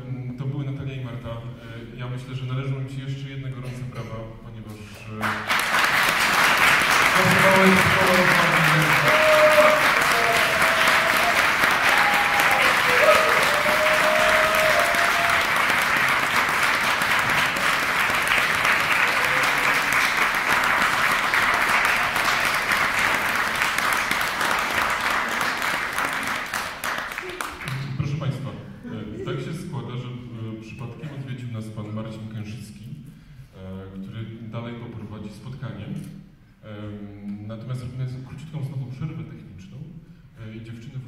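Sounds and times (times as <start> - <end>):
audience applauding: 5.2 - 28.0.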